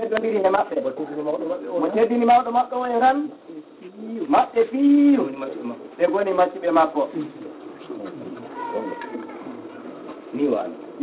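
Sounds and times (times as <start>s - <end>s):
man speaking: 0.0s - 10.9s.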